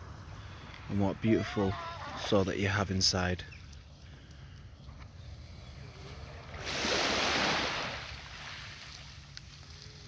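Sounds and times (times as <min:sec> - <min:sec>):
small wave washing onto beach: 0:06.5 - 0:09.8.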